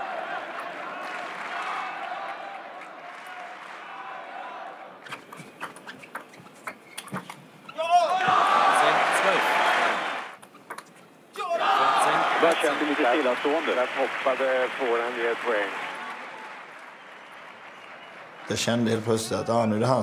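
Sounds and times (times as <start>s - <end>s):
murmur of spectators: 0.0s - 5.1s, 8.1s - 10.4s, 11.4s - 20.0s
crowd cheering: 0.0s - 5.2s, 7.7s - 10.4s, 11.4s - 20.0s.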